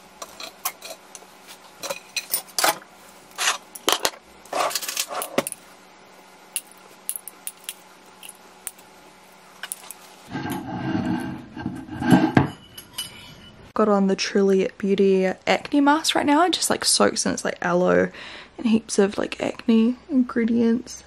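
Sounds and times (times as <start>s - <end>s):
scraping on countertop: 0.2s - 5.5s, 9.7s - 13.6s.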